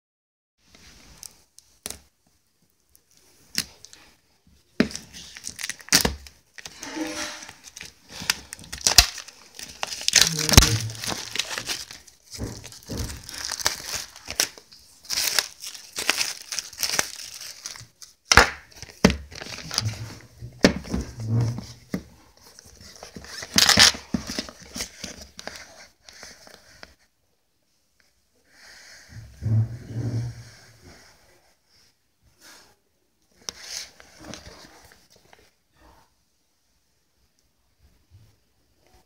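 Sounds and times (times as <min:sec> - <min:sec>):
packaging rustling and crumpling: 0:04.8 - 0:26.6, 0:33.4 - 0:35.5
packaging clicks: 0:07.6 - 0:12.0.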